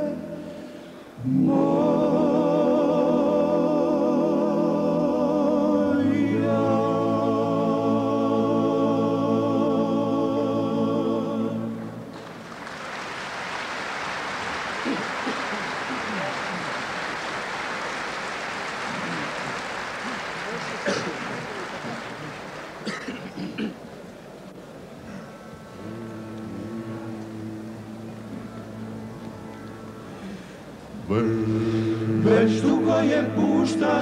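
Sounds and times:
male choir singing chord: 1.2 - 12.1, 25.8 - 30.2, 31.0 - 34.0
audience applause: 12.1 - 23.5.

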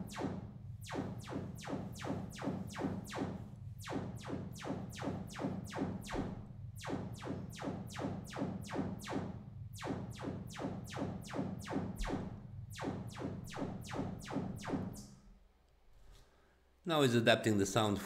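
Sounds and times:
steady low hum: 0.0 - 15.5.

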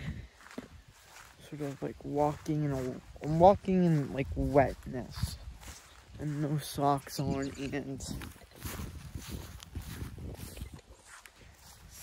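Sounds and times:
footsteps in wet grass: 0.0 - 12.0.

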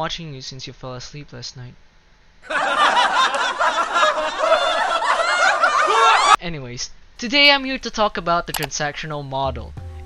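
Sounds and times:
people laughing: 2.4 - 6.4.

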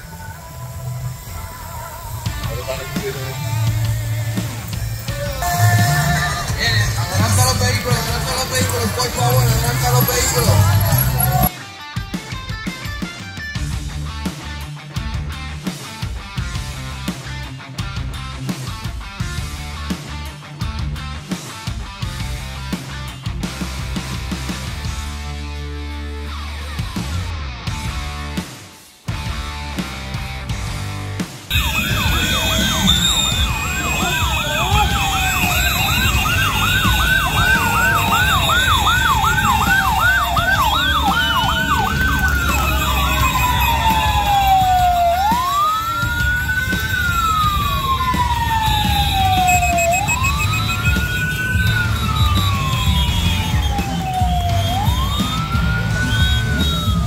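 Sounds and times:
vehicle sirens wailing: 0.0 - 11.5, 31.5 - 57.0.

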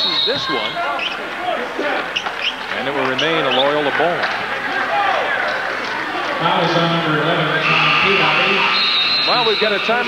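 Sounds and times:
arena crowd voices: 0.0 - 10.0
steady held tones: 6.5 - 10.0.

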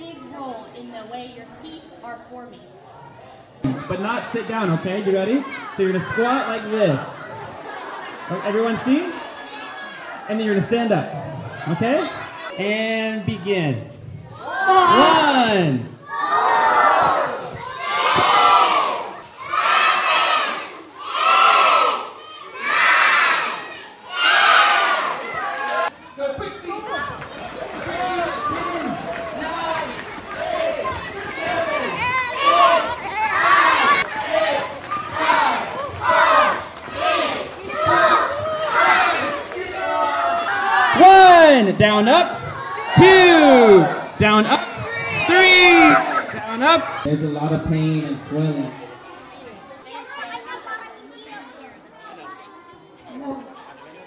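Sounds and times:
children shouting and cheering: 3.6 - 10.4, 14.3 - 54.0
children calling in unison: 14.4 - 25.9, 26.8 - 41.5, 42.3 - 47.1.

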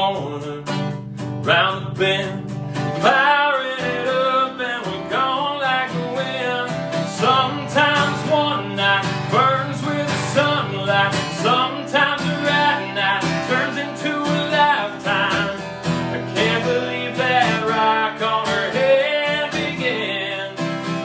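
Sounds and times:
acoustic guitar strumming: 0.0 - 21.0
man singing: 0.0 - 21.0.

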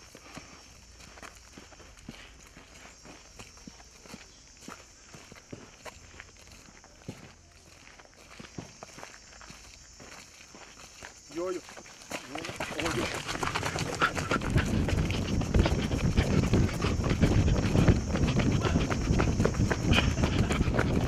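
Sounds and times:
footsteps on dirt road: 0.0 - 21.0.

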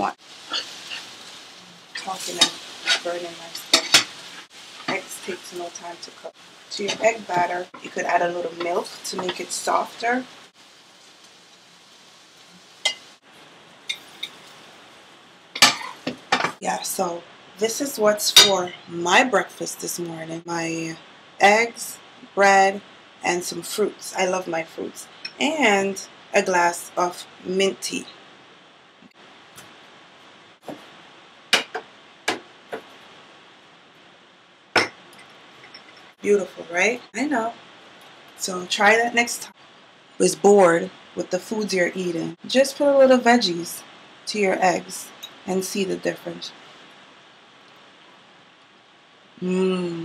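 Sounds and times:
eggs sizzling in a frying pan: 0.0 - 49.6
faint steady hiss: 0.0 - 50.0.

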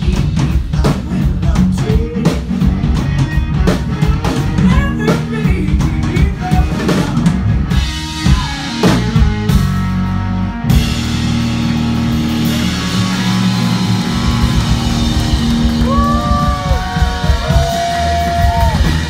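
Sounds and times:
drum kit: 0.0 - 19.0
electric bass: 0.0 - 19.0
electric guitar: 0.0 - 19.0.

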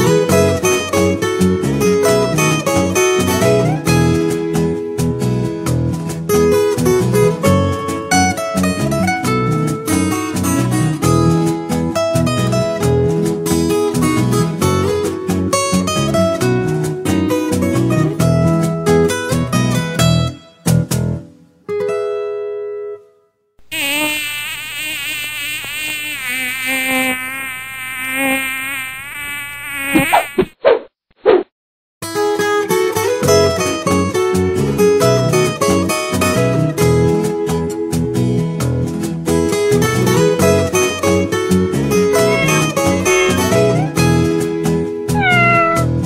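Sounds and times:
acoustic guitar music: 0.0 - 23.1, 32.0 - 46.0
flying insect buzzing: 23.7 - 30.5, 42.1 - 44.0
cat meowing: 42.2 - 43.9, 45.2 - 46.0.

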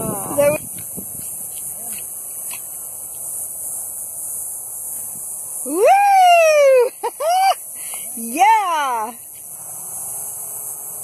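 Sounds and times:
steady high hiss: 0.0 - 11.0
person whooping: 5.7 - 7.6.

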